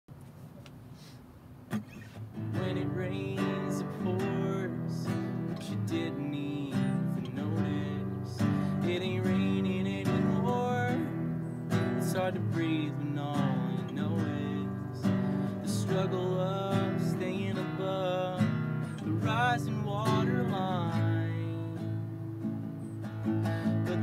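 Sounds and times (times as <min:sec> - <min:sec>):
classical guitar chords: 0:01.7 - 0:24.0.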